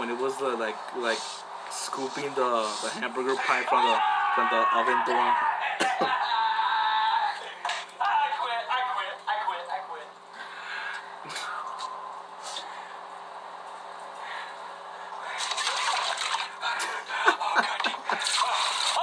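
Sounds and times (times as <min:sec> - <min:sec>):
low electrical hum: 0:00.0 - 0:19.0.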